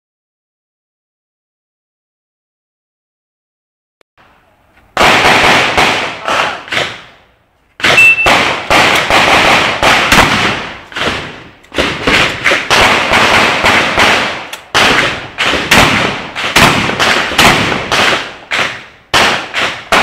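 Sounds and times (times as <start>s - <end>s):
shotgun firing rapidly: 5.0s - 7.1s, 7.8s - 20.0s.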